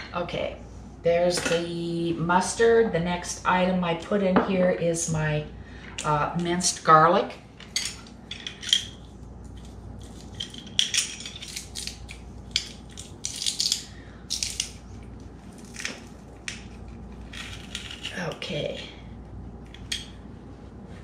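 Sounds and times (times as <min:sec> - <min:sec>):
garlic press crushing garlic: 0:10.7 - 0:14.8.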